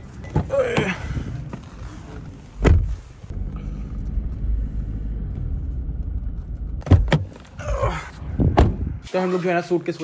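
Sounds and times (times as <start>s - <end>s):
car cabin road rumble: 0.0s - 9.0s.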